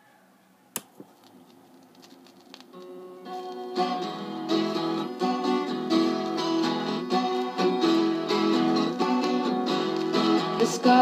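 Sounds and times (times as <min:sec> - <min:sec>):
record surface crackle: 0:00.8 - 0:10.6
acoustic guitar notes: 0:02.6 - 0:11.0.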